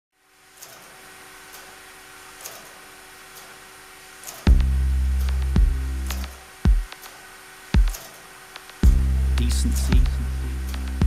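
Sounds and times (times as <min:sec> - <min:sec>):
machine room hum and hiss: 0:00.2 - 0:11.0.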